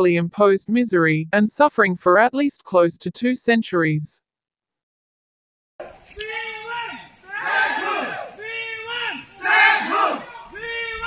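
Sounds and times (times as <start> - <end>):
crowd shouting slogans: 5.8 - 11.0.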